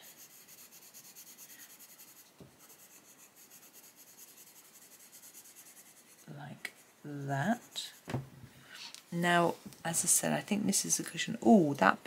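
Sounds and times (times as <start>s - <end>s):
pencil scratching on paper: 0.0s - 8.0s.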